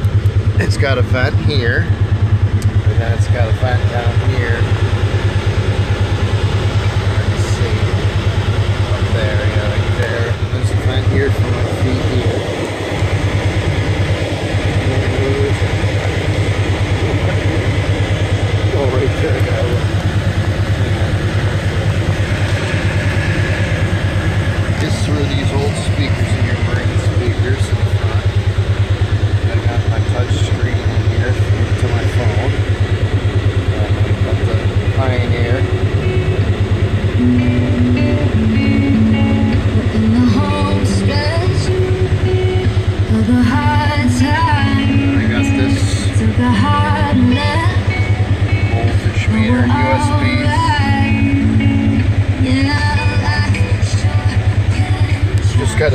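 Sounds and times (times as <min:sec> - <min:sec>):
engine idling: 0:00.0 - 0:55.9
stereo playing music: 0:37.0 - 0:55.9.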